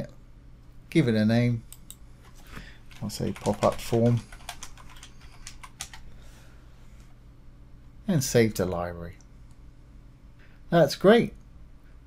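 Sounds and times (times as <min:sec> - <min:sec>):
faint low hum: 0:00.0 - 0:12.0
computer keyboard typing: 0:02.9 - 0:06.1.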